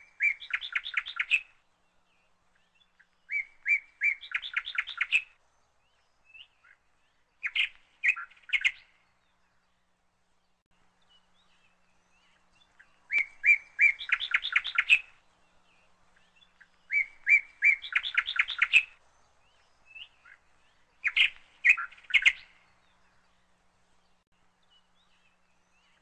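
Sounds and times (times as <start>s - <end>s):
small songbird singing: 0.0s - 26.0s.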